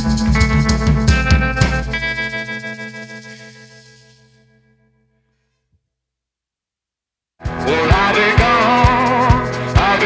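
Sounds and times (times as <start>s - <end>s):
rock band chord ringing out: 0.0s - 4.4s.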